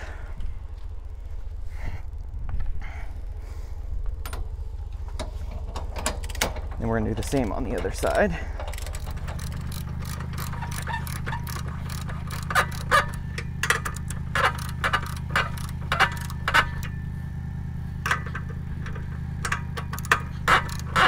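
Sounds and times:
steady low hum: 0:00.0 - 0:21.0
socket wrench ratcheting: 0:08.6 - 0:16.9, 0:18.1 - 0:21.0.

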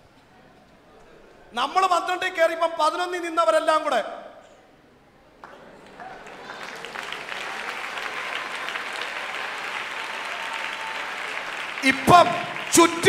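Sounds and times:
preacher speaking: 0:01.5 - 0:04.3, 0:11.8 - 0:13.0
congregation applauding: 0:05.4 - 0:13.0.

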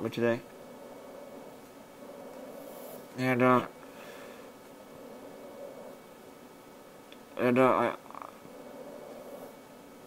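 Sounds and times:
faint airflow: 0:00.0 - 0:07.3, 0:08.3 - 0:10.0.

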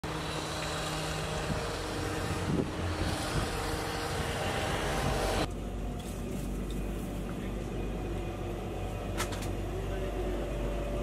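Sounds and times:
indoor hum: 0:00.0 - 0:11.0
road traffic: 0:00.0 - 0:11.0.

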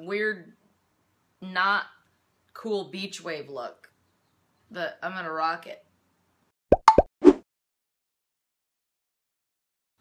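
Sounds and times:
cartoon-style pops: 0:06.7 - 0:07.4.

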